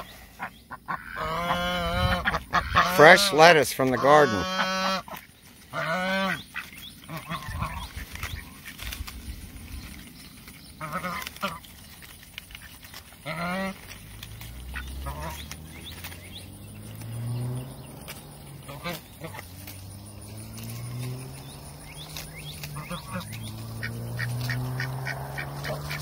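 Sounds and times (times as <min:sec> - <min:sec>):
ducks quacking: 0:00.0 - 0:09.1, 0:10.8 - 0:26.0.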